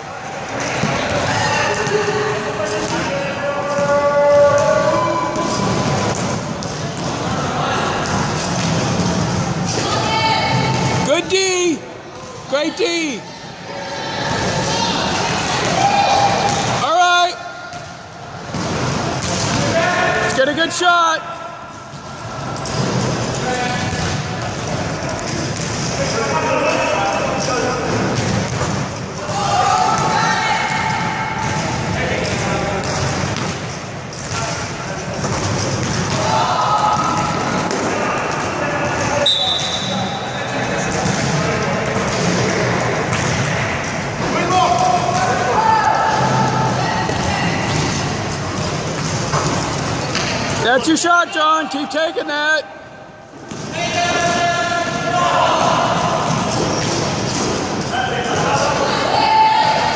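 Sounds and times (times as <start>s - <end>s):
people shouting: 13.7s - 17.2s, 29.2s - 31.7s, 36.1s - 39.3s, 44.3s - 47.7s, 53.7s - 56.6s, 57.9s - 59.9s.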